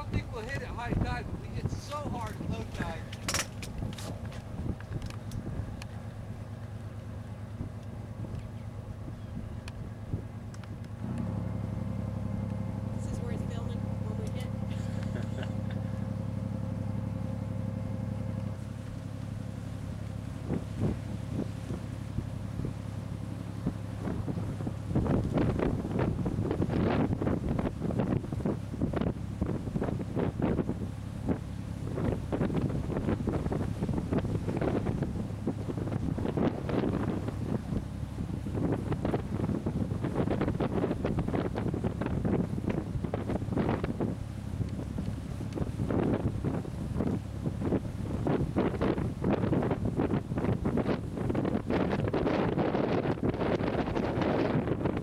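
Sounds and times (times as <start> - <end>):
boat engine droning: 0.0 - 55.0
wind buffeting microphone: 0.0 - 55.0.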